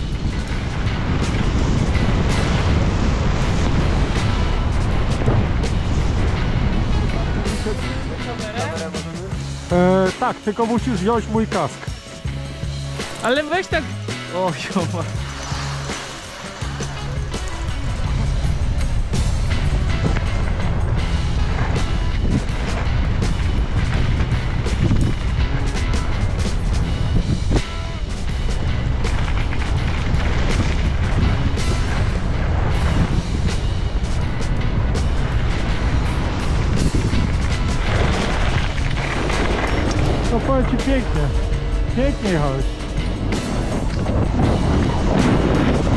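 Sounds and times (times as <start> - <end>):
skis scraping over snow: 0.0 - 8.8, 14.4 - 45.9
wind buffeting microphone: 0.0 - 9.5, 15.0 - 45.9.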